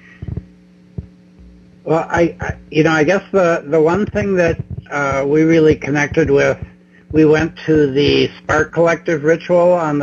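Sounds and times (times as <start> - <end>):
electrical hum: 0.0 - 10.0
low thumps: 0.1 - 9.0
man speaking: 1.8 - 10.0.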